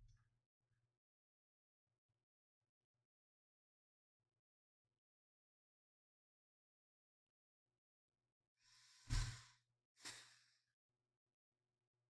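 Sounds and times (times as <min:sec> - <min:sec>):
puff of air hitting microphone: 0:09.1 - 0:09.4.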